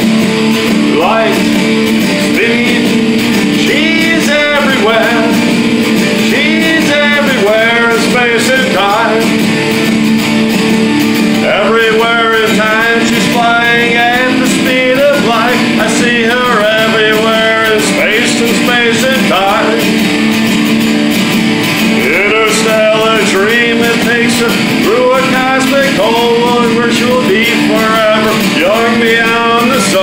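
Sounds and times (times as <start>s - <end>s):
man singing: 0.0s - 9.8s, 11.3s - 20.0s, 21.8s - 30.0s
electric guitar strumming: 0.0s - 30.0s.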